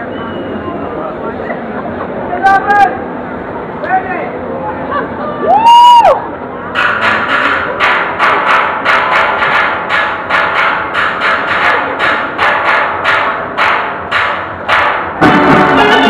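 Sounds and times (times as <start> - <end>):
steady percussion beat: 6.8 - 16.0.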